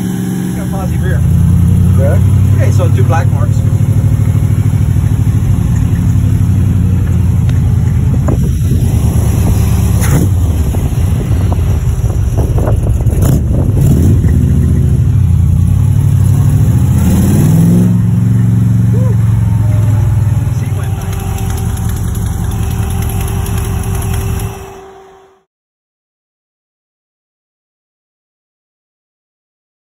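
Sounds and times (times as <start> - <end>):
car engine from inside cabin: 0.0 - 25.2
engine revving: 0.0 - 25.4.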